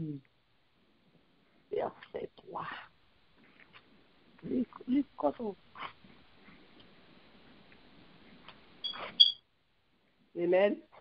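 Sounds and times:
faint steady hiss: 0.0s - 11.0s
high electronic beep: 8.8s - 9.4s.

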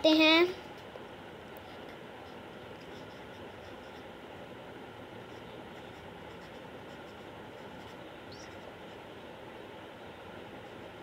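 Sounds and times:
steady background hiss: 0.0s - 11.0s
pen scratching on paper: 1.6s - 4.2s, 5.0s - 9.1s, 10.4s - 11.0s.

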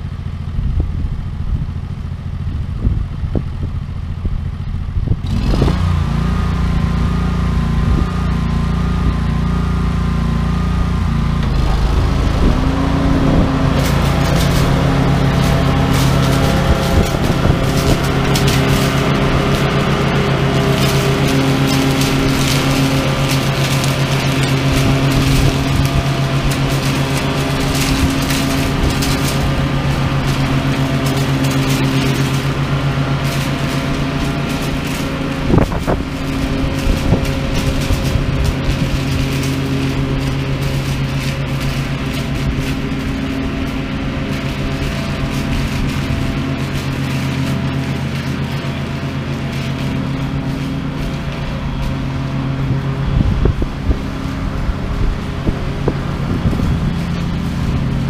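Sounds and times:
lawn mower engine running: 0.0s - 58.0s
pods and leaves crackling: 10.8s - 58.0s.

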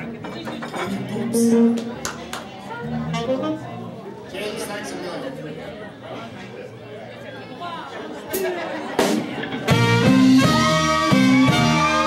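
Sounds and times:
crowd chatter: 0.0s - 12.0s
instrument notes: 0.8s - 2.0s, 2.7s - 4.1s, 9.7s - 12.0s.

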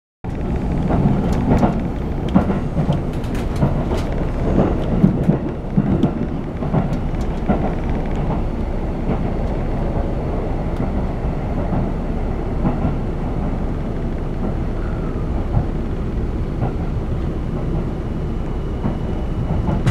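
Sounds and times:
train rumble: 0.2s - 19.9s.

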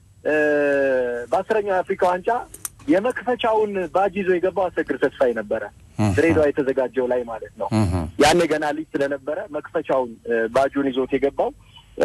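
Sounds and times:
person talking: 0.3s - 12.0s.

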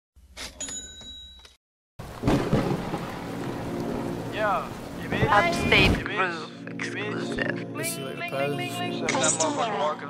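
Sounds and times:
rain hiss: 2.0s - 6.0s
thunder rumbling: 2.0s - 6.1s.

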